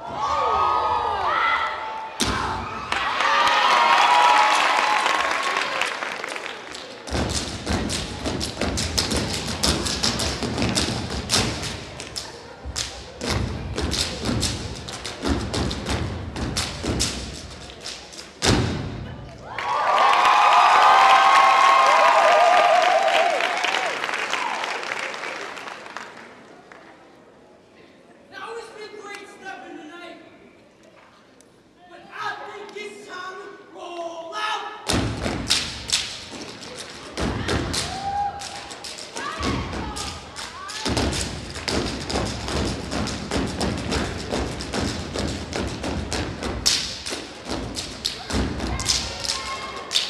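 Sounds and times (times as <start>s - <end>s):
audience screaming and cheering: 0.0s - 6.6s, 19.3s - 25.3s, 37.1s - 41.0s
rhythmic thumps and claps: 4.4s - 19.0s, 34.9s - 50.0s.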